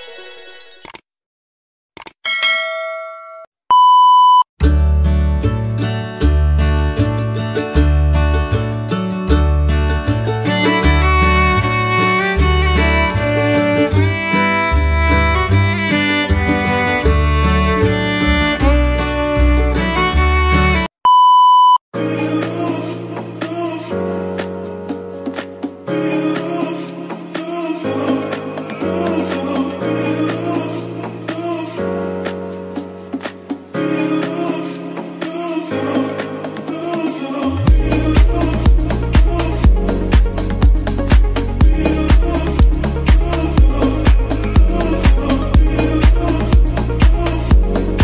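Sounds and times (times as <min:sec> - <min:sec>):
quick clicks: 0:02.0 - 0:02.2
bell-like ding: 0:02.2 - 0:03.5
loud steady beep: 0:03.7 - 0:04.5, 0:21.0 - 0:21.8
upbeat music with bass and guitar: 0:04.6 - 0:20.9, 0:22.4 - 0:48.0.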